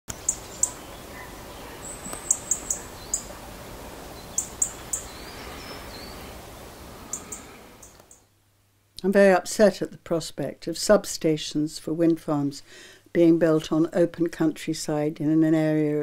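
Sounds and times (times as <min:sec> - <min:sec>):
small birds chirping: 0:00.1 - 0:08.3
background hiss: 0:00.1 - 0:16.0.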